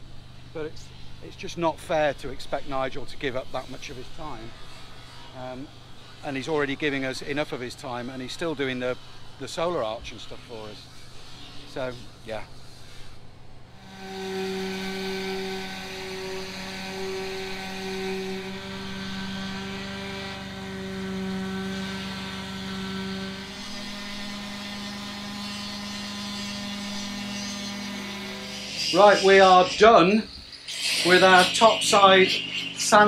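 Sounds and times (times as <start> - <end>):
orbital sander on metal hull: 0.0 - 33.0.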